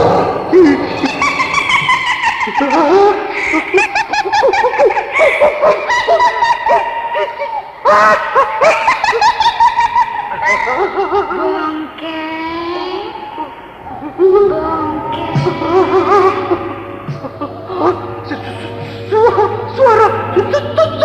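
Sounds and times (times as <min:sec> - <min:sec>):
high-pitched voice laughing: 0:00.0 - 0:21.0.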